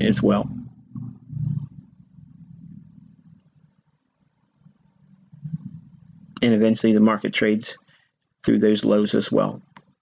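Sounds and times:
faint low rumble: 0.0 - 7.8.

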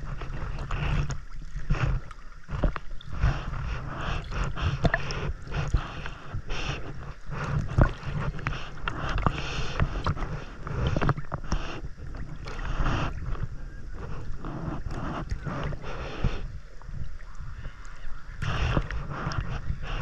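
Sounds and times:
legs kicking in water: 0.0 - 20.0
low rumble of water: 0.0 - 20.0
water sloshing and splashing: 0.0 - 20.0.

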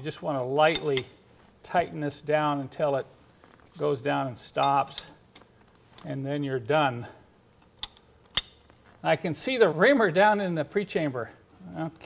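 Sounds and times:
metal tool clinking on metal: 0.7 - 1.2, 4.6 - 6.5, 7.6 - 8.7.

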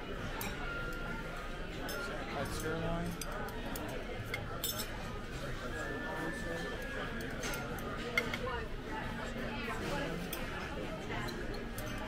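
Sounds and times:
background chatter: 0.0 - 12.0
metal cutlery clinking on china: 0.3 - 5.2, 6.2 - 8.6, 9.8 - 12.0.

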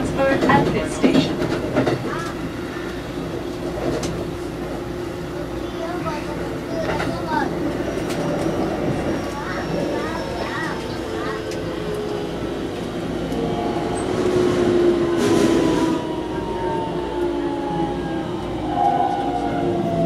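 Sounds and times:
train wheel and running noise: 0.0 - 20.0.

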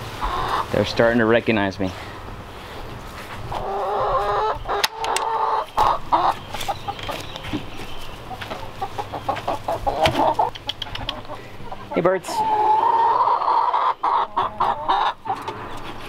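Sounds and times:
chickens clucking: 0.0 - 16.0.

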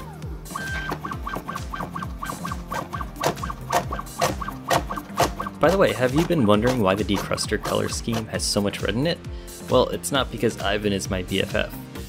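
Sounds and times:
background music: 0.0 - 12.0
knife chopping carrot on board: 2.8 - 8.4.

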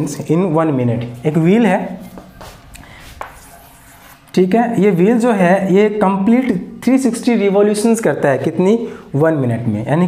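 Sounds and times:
chalk scratching on blackboard: 2.0 - 4.3
chalk tapping on blackboard: 2.1 - 4.2.

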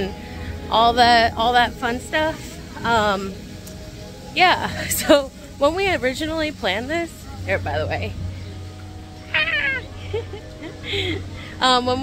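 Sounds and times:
woman's squealing laugh: 9.3 - 11.3.

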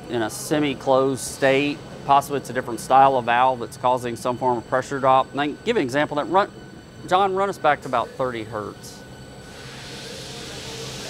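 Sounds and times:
liquid hissing through pipes: 9.4 - 11.0
pump motor humming: 9.4 - 11.0.

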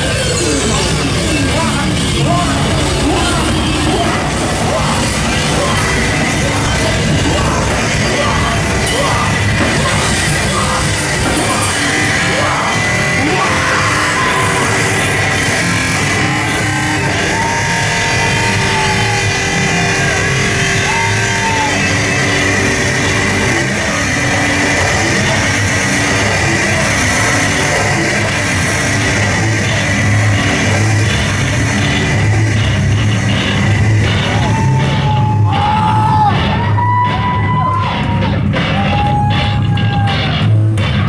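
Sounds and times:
sustained high tone: 0.0 - 31.1
pitch-bending lines: 0.0 - 35.6
live heavy band playing: 0.0 - 41.0.

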